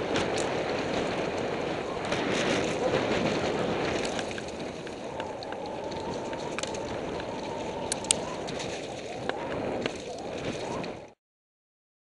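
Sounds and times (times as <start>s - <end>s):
bike rattling: 0.0s - 11.2s
wind on microphone: 0.0s - 11.2s.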